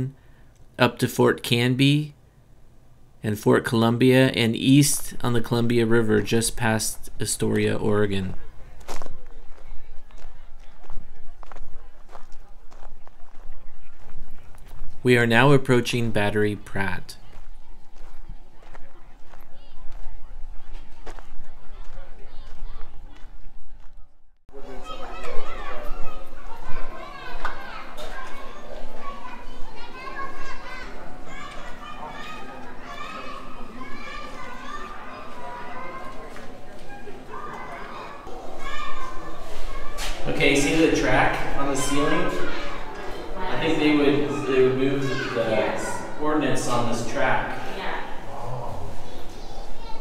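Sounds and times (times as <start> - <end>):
crowd talking and calling out: 5.2 - 50.0
footsteps crunching on gravel: 8.4 - 15.0, 17.3 - 24.0.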